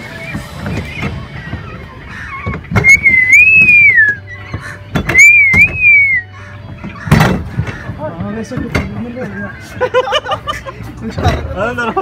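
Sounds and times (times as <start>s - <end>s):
person whistling: 2.8s - 4.2s, 5.1s - 6.3s
sharp knocks: 6.8s - 8.0s.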